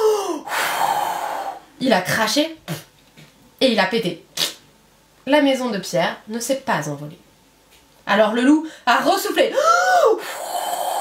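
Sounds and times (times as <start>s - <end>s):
woman blowing out breath: 0.0s - 1.6s.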